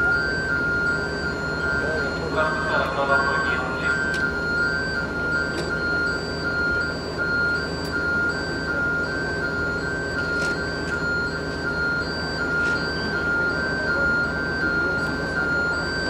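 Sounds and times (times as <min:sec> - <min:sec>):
truck warning beeper: 0:00.0 - 0:16.0.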